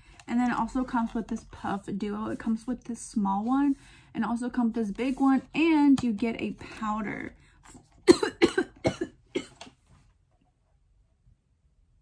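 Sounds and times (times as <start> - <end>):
woman coughing: 8.0 - 9.6.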